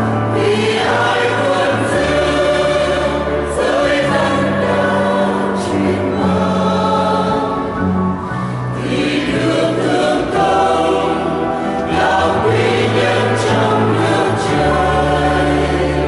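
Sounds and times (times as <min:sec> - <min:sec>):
mixed choir singing a hymn: 0:00.0 - 0:16.0.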